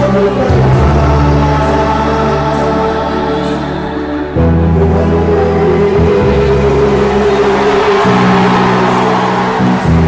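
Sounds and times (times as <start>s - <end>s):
loud music with held chords: 0.0s - 10.0s.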